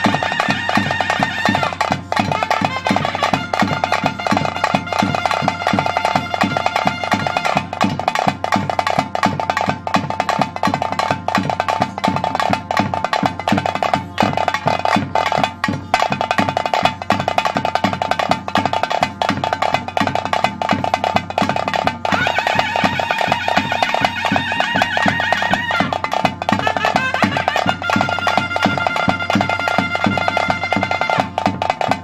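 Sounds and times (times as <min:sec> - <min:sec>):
drums beaten fast: 0:00.0 - 0:32.0.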